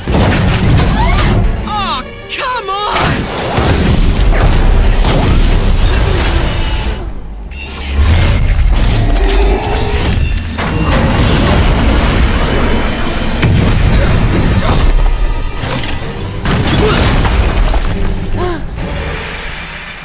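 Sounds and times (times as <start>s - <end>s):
booms and blasts: 0.0s - 1.6s, 3.0s - 7.1s, 9.9s - 15.5s
background music: 0.0s - 20.0s.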